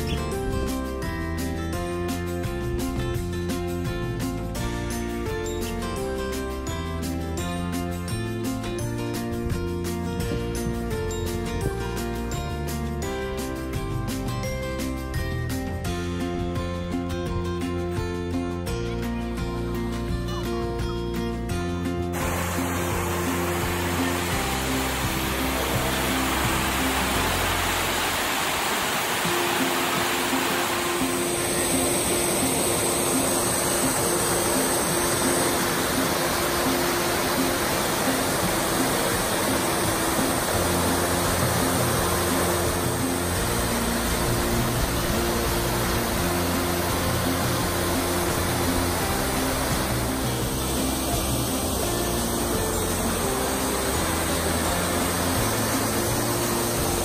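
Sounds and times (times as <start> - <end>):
fountain water rushing: 0.0 - 15.7, 22.1 - 57.0
slow low music notes: 0.0 - 57.0.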